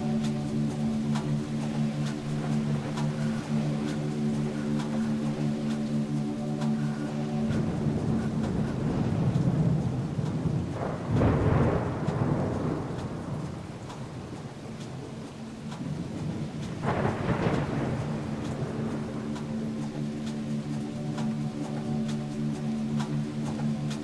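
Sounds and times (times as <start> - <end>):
low rumbling: 0.0 - 24.0.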